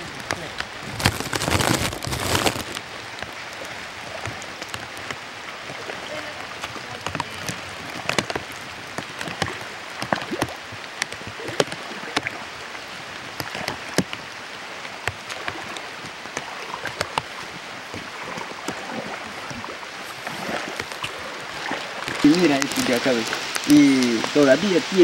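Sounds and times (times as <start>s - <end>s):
boots splashing through water: 0.0s - 25.0s
steady watery hiss: 0.0s - 25.0s.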